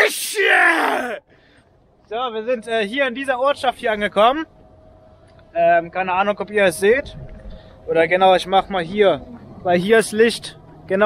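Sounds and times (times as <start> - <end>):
man groaning yell: 0.0 - 1.2.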